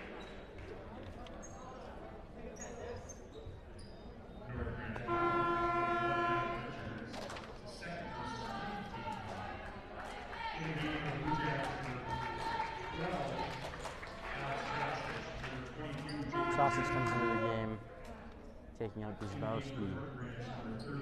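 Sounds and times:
echoing voices: 4.5s - 7.1s, 14.4s - 17.9s
scoreboard horn buzz: 4.9s - 7.0s, 16.2s - 17.8s.

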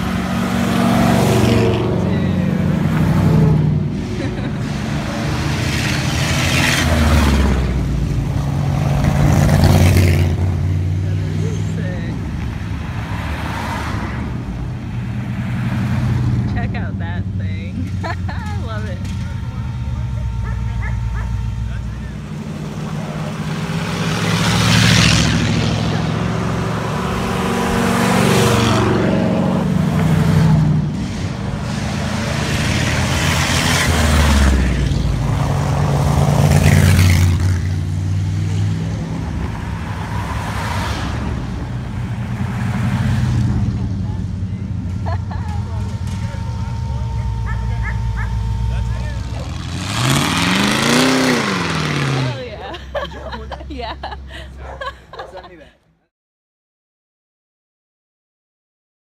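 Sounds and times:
car engine revving: 0.0s - 54.8s
cars and trucks driving past: 0.0s - 56.0s.

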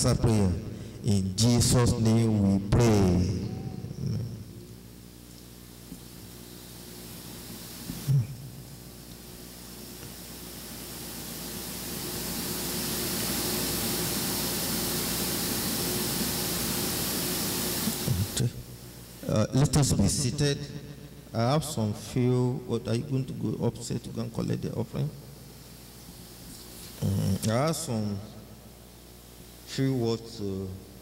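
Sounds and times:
faint low hum: 0.0s - 31.0s
steady background hiss: 0.0s - 31.0s.

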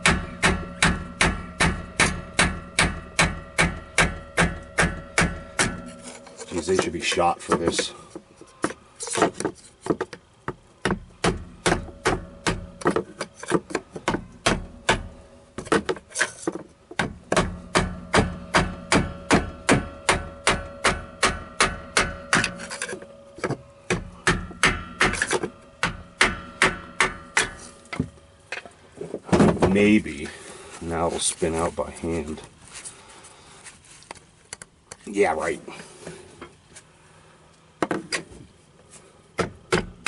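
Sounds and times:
hammer blows on metal: 0.0s - 8.0s.

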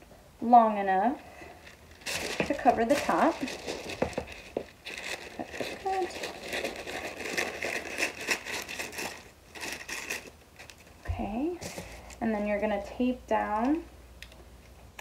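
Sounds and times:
parchment paper crinkling: 1.3s - 11.0s
scissors cutting paper: 5.0s - 10.8s.

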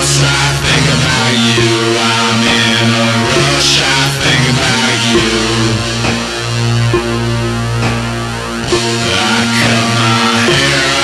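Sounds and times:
bass guitar: 0.0s - 11.0s
distorted electric guitar: 0.0s - 11.0s.

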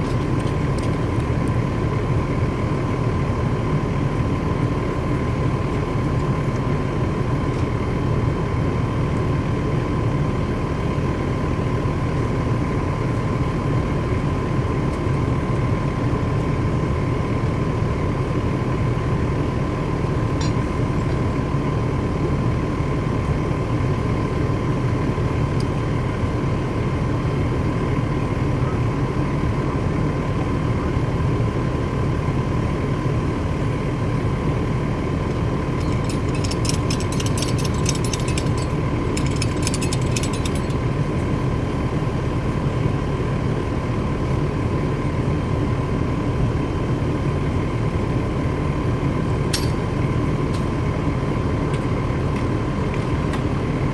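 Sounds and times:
fire engine low rumble and whine: 0.0s - 53.9s
rapid clicking: 35.8s - 40.8s.

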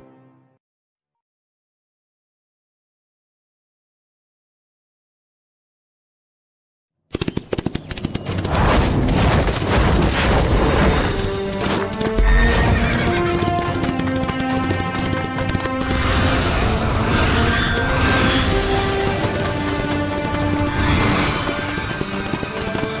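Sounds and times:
galloping horse hoofbeats: 7.1s - 23.0s
dramatic soundtrack music: 9.2s - 23.0s.

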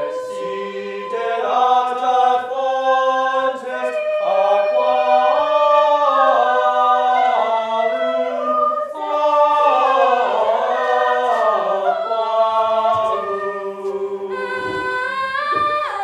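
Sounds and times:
a cappella choir singing: 0.0s - 16.0s.

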